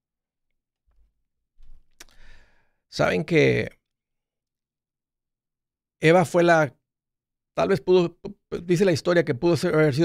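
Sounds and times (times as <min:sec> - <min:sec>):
mouth click: 0:02.0 - 0:02.2
man breathing out: 0:02.0 - 0:02.8.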